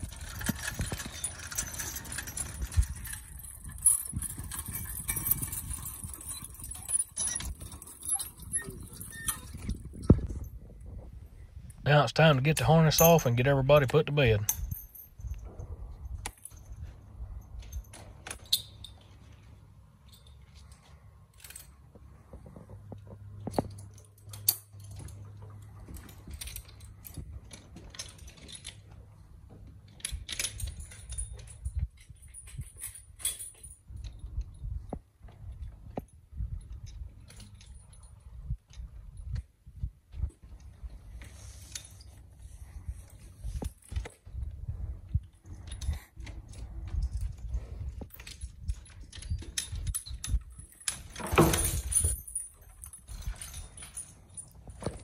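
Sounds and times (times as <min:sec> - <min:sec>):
harness chains jingling: 0:00.0 - 0:10.7, 0:12.2 - 0:22.2, 0:23.2 - 0:39.4, 0:40.4 - 0:55.0.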